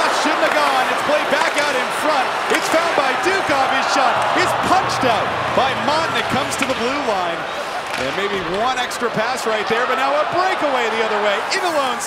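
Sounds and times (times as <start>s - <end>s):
hockey sticks and puck clacking: 0.0s - 9.7s
crowd voices in arena: 0.0s - 12.0s.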